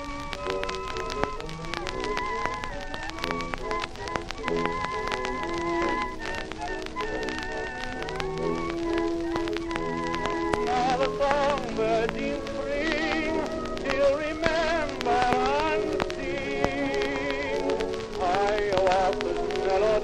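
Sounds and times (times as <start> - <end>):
old instrumental recording: 0.0 - 20.0
record surface crackle: 0.0 - 20.0.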